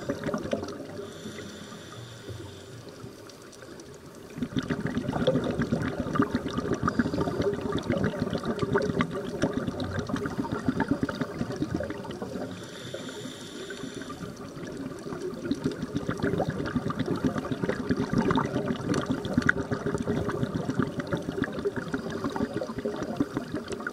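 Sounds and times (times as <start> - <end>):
underwater bubbling: 0.0 - 23.9
inhaled breath hiss: 0.9 - 3.3, 12.3 - 14.5.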